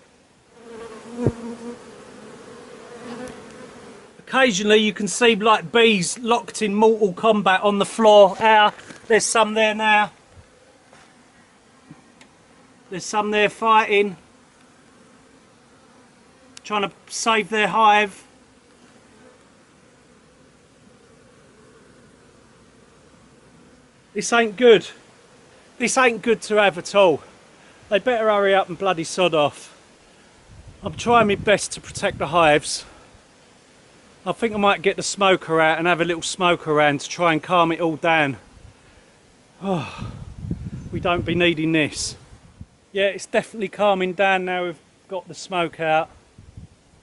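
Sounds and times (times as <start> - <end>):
bees buzzing in a swarm: 0.0 - 36.9.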